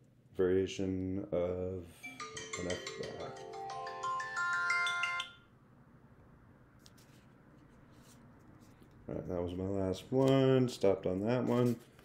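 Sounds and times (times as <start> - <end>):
timer alarm chiming melody: 2.0 - 5.5.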